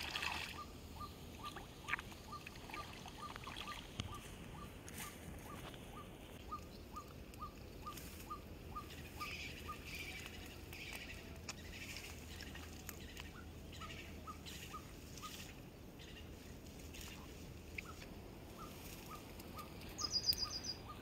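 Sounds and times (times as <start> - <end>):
bird calling: 0.3 - 16.4, 17.0 - 21.0.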